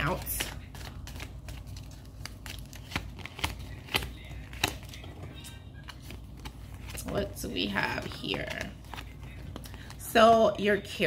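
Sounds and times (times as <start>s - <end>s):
cards being shuffled: 0.0s - 10.1s.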